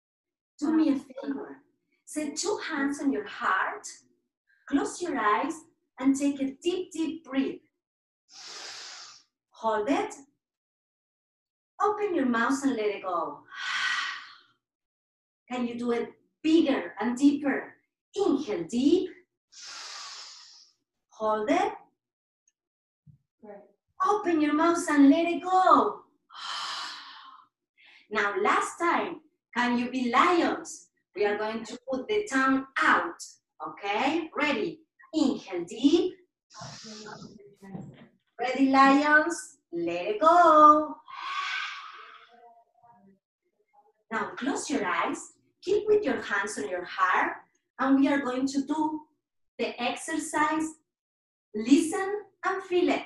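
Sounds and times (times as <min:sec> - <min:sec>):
forceful breathy exhale: 0:08.4 - 0:09.2, 0:19.6 - 0:20.6, 0:41.1 - 0:42.1
person inhaling deeply: 0:08.4 - 0:09.2, 0:19.6 - 0:20.6, 0:41.1 - 0:42.2.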